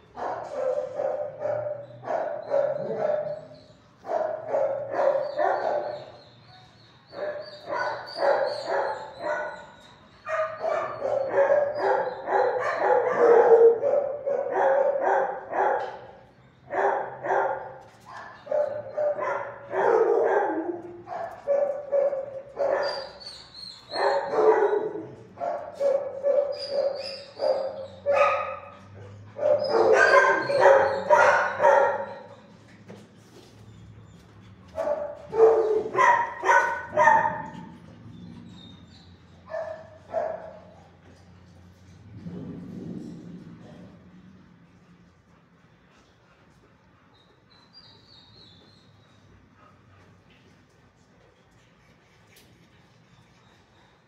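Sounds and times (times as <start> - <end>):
dogs barking: 0.0 - 32.6, 34.7 - 44.0
dogs yelping: 0.2 - 32.7, 34.0 - 41.0.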